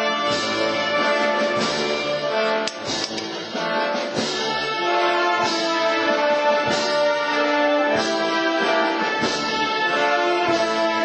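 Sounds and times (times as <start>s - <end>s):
brass band processional march: 0.0s - 11.0s
drum beats: 0.0s - 11.0s.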